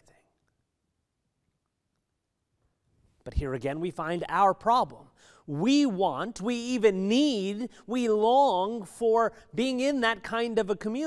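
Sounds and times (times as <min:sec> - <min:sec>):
man speaking: 0:03.2 - 0:11.0.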